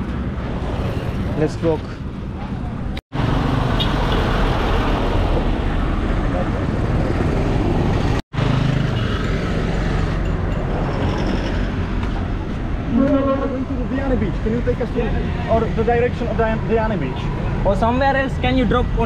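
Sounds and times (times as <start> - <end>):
tuk-tuk passing: 0.0 - 17.2
engine and road rumble: 0.0 - 19.0
motorcycles passing: 0.0 - 19.0.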